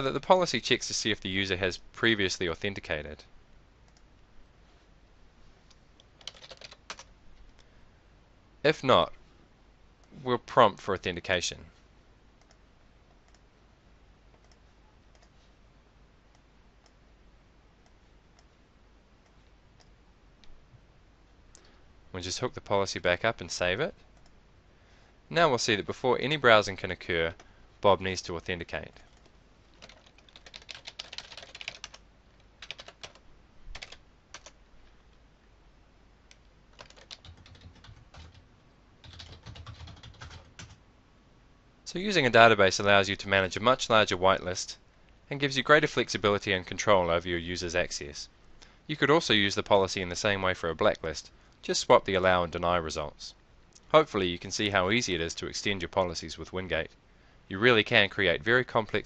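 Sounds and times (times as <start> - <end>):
computer keyboard typing: 6.2 - 7.1, 29.1 - 32.0, 32.6 - 34.6, 36.7 - 38.4, 39.0 - 40.8
computer mouse clicks: 12.4 - 13.5, 14.3 - 15.4.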